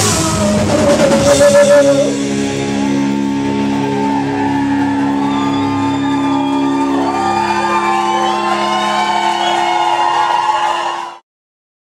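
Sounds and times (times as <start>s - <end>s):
rock band sustained notes: 0.0s - 11.1s
audience shouting and whooping: 0.1s - 11.2s.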